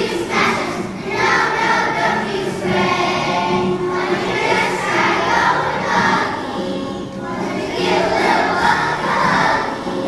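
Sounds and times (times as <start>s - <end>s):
children's choir singing: 0.0s - 10.0s.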